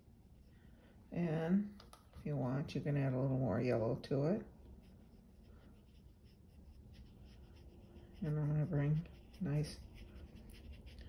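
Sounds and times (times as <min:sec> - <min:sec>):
paintbrush strokes on wet paper: 0:04.5 - 0:11.0.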